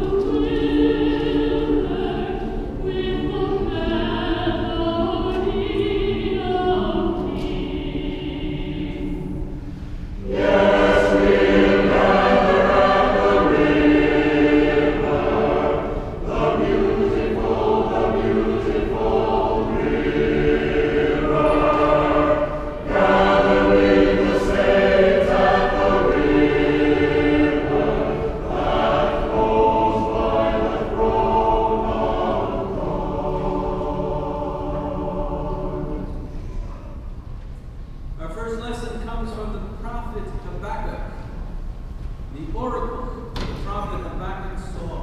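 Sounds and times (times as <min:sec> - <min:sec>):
church choir singing: 0:00.0 - 0:37.2.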